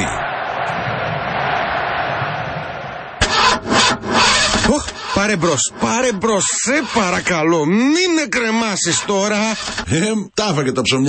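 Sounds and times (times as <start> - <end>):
car engine cranking: 3.2 - 7.4, 8.7 - 9.9.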